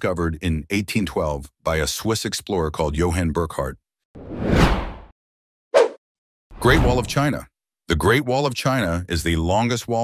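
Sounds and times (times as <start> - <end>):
whoosh sound effect: 4.2 - 5.1, 6.6 - 7.2.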